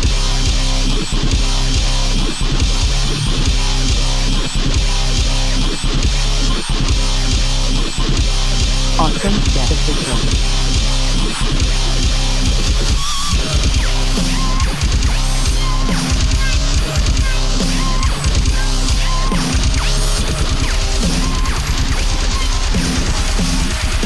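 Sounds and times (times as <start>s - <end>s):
fast dense electronic drums: 0.0s - 24.0s
heavy distorted bass: 0.0s - 24.0s.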